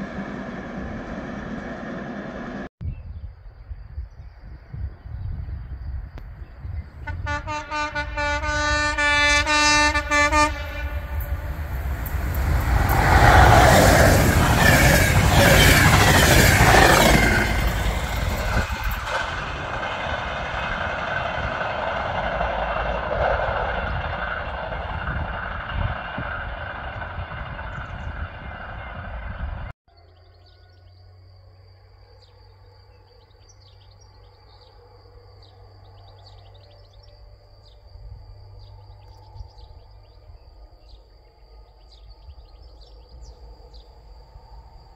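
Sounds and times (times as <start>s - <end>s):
freight train wheels rumbling: 0.0s - 2.7s, 6.6s - 29.7s
faint insects: 2.8s - 29.1s, 29.9s - 44.9s
locomotive horn: 7.0s - 13.8s.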